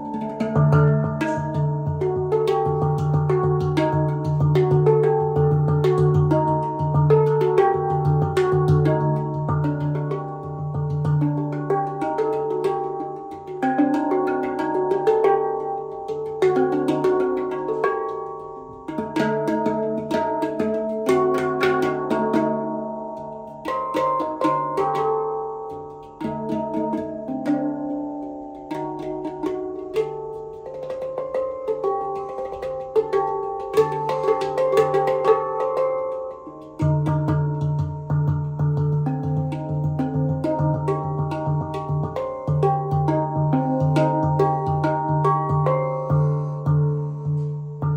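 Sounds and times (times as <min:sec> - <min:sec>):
handpan ringing metallic notes: 0:00.0 - 0:47.9
sustained low handpan note: 0:33.7 - 0:47.9.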